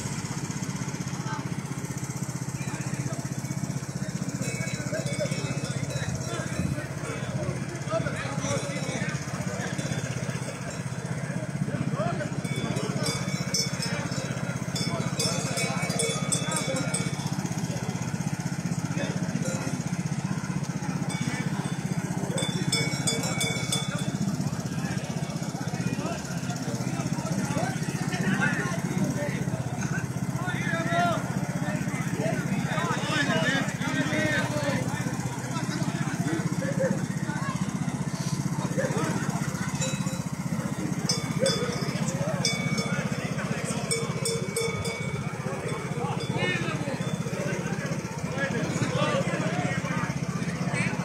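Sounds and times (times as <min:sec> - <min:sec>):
faint voices: 0:00.0 - 0:51.0
people chatting: 0:00.0 - 0:51.0
small engine idling: 0:00.0 - 0:51.0.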